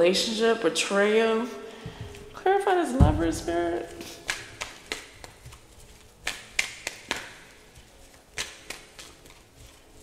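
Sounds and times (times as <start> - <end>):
cards being shuffled: 4.0 - 10.0.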